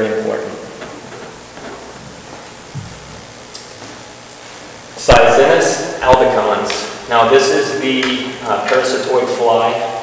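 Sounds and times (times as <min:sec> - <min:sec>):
room tone hiss: 0:00.0 - 0:10.0
faint soft thump: 0:01.6 - 0:03.1.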